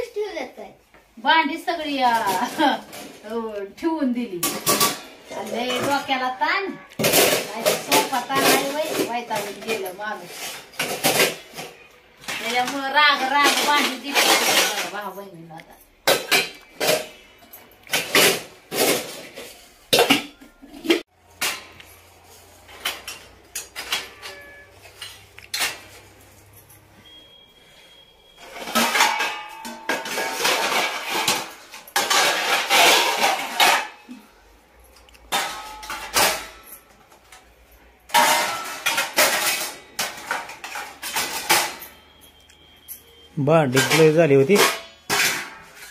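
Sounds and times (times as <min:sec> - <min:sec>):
metal pots clanking: 0:04.3 - 0:15.2, 0:16.0 - 0:22.0, 0:22.6 - 0:34.5, 0:35.1 - 0:45.9.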